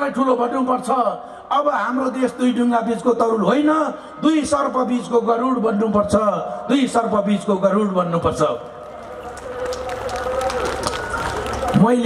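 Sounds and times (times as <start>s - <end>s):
crowd voices: 8.4s - 12.0s
audience clapping: 8.5s - 12.0s.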